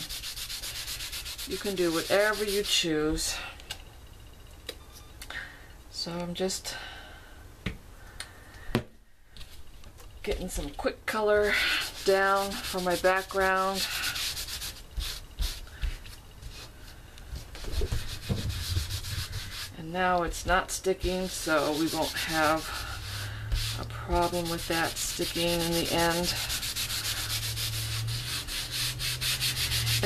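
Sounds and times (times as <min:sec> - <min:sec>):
wipe scrubbing over tape: 0:00.0 - 0:02.8, 0:17.4 - 0:19.8, 0:21.0 - 0:30.0
steady low hum: 0:00.0 - 0:30.0
hand bumping work surface: 0:17.6 - 0:19.6.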